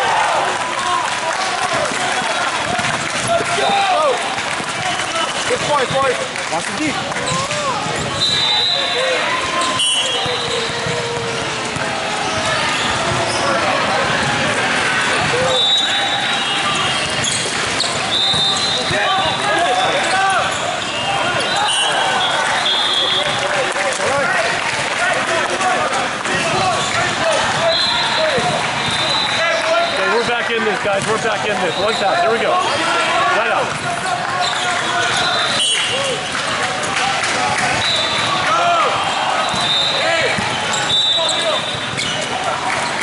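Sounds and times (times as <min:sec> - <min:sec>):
volleyballs hit and bouncing: 0:00.0 - 0:43.0
voices talking and calling: 0:01.6 - 0:43.0
short high squeaks: 0:40.7 - 0:42.4.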